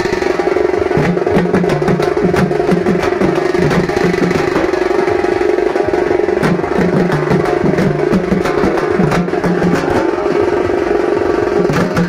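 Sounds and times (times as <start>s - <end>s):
frame drums beaten in dance rhythm: 0.0s - 12.0s.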